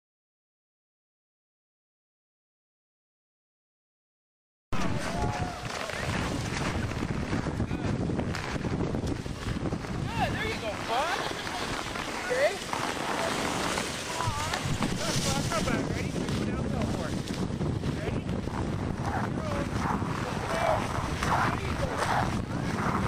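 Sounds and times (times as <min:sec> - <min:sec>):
wind buffeting microphone: 0:04.8 - 0:23.0.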